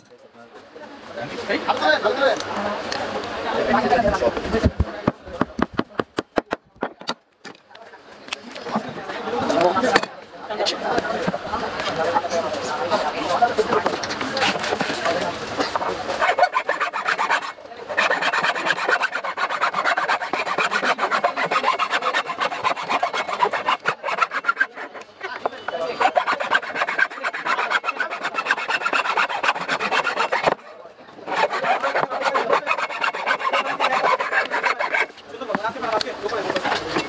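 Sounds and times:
hacksaw rasping strokes: 0:13.7 - 0:30.6, 0:31.2 - 0:35.2.

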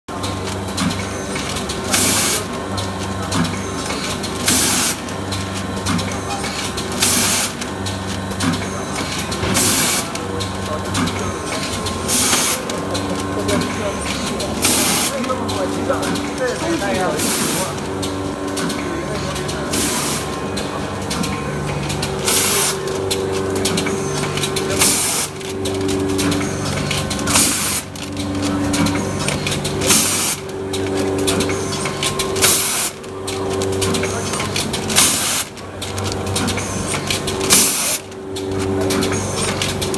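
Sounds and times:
packing machine humming and ticking: 0:00.1 - 0:39.9
rapid mechanical clicking: 0:00.1 - 0:39.9.

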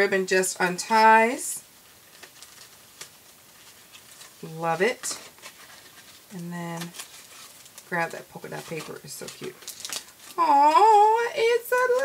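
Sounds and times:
ribbon rustling: 0:01.7 - 0:12.0.

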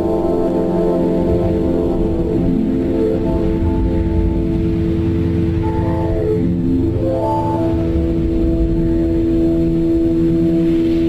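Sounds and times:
ambient music with held tones: 0:00.0 - 0:11.0.

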